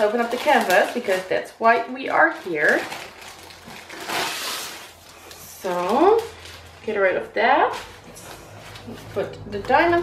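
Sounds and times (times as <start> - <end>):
plastic sleeve rustling and crinkling: 0.0 - 10.0.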